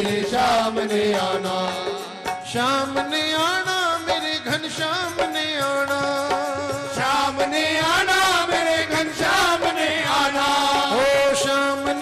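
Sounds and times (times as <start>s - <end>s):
devotional singing with accompaniment: 0.0s - 12.0s.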